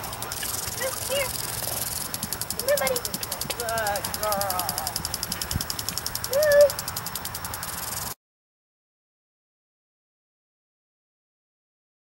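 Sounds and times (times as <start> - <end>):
insects chirping rapidly: 0.0 - 8.2
rising and falling call: 5.8 - 8.1.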